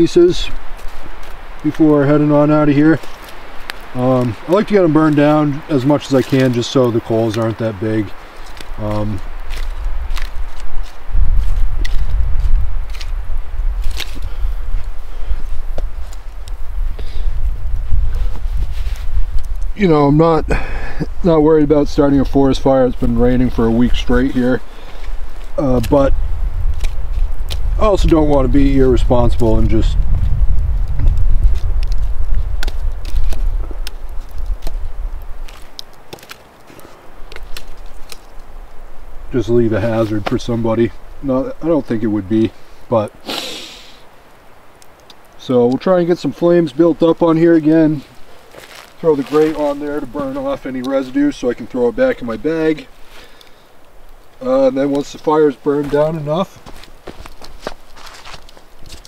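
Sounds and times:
knocks and crackles of burnt wood: 0:00.0 - 0:59.0
low rumble: 0:25.5 - 0:35.4.

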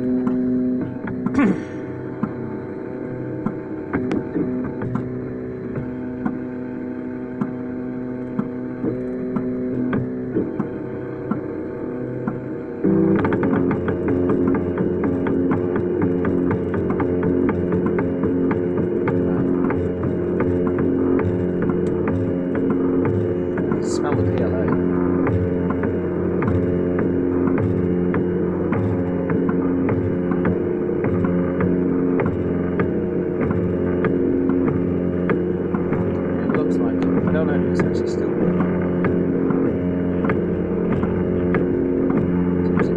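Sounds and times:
printer motors whining: 0:00.0 - 0:42.9
steady machine hum: 0:00.0 - 0:42.9.

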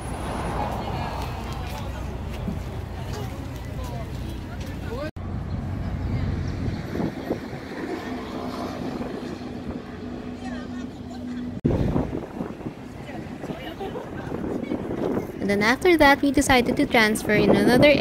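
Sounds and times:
indistinct chatter of passers-by: 0:00.0 - 0:18.0
traffic rumble: 0:00.0 - 0:18.0.

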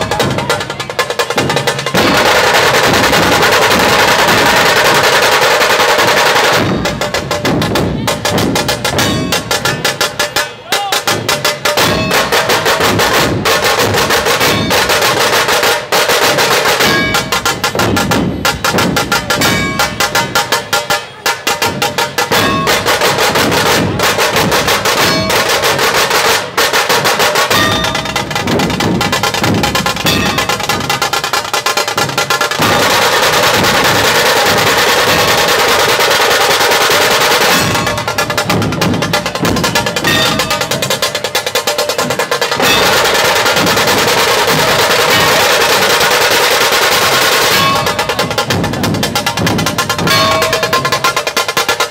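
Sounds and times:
dhol drums beaten with sticks: 0:00.0 - 0:51.9
tasha drums rattling: 0:00.0 - 0:51.9.

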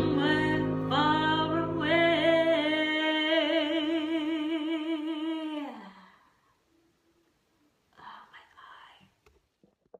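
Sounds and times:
woman whispering: 0:07.9 - 0:09.2.

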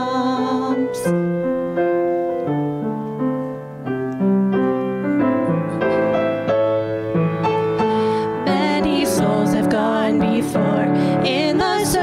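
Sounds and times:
piano chords: 0:00.0 - 0:12.0.

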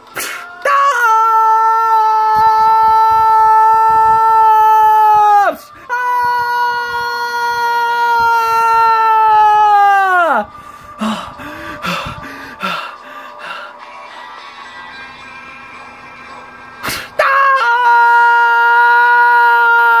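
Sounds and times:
cartoon character screaming: 0:17.2 - 0:20.0.

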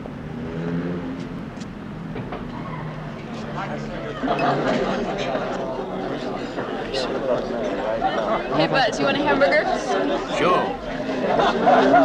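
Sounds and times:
passing car traffic: 0:00.0 - 0:12.0
indistinct voices: 0:02.6 - 0:12.0.

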